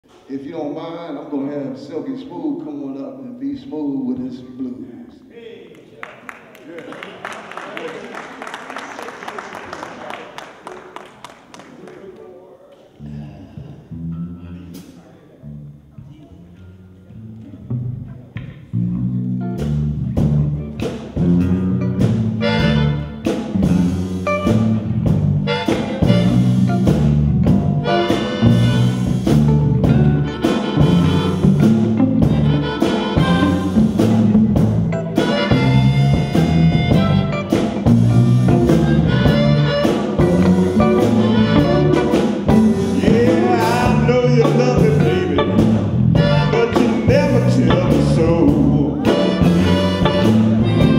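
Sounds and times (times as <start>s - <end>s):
low bass notes: 13.0s - 50.9s
live blues band: 16.4s - 50.9s
harmonica: 22.3s - 23.2s, 25.4s - 26.9s, 27.8s - 34.2s, 34.9s - 50.9s.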